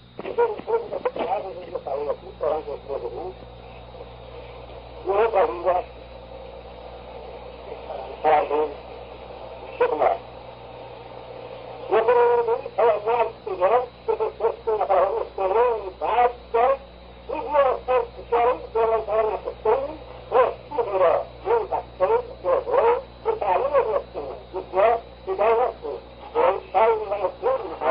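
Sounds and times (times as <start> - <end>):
steady low hum: 0.0 - 27.9
man talking: 0.4 - 3.4.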